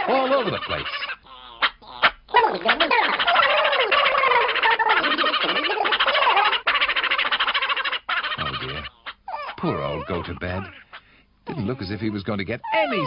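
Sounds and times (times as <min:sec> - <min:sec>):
cartoon creatures chattering: 0:00.0 - 0:13.0.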